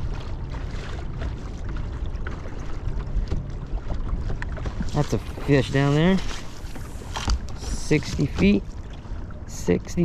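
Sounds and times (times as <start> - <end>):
water slapping boat hull: 0.0 - 10.0.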